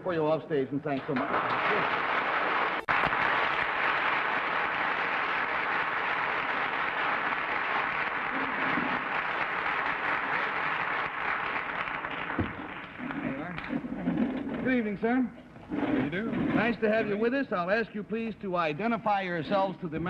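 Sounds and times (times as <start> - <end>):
studio audience applauding: 1.0 - 13.7.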